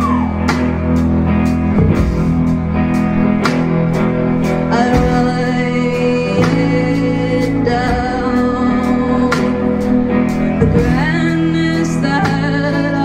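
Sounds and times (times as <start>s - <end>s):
bass guitar: 0.0s - 13.0s
drum kit beat: 0.0s - 13.0s
electric guitars: 0.0s - 13.0s.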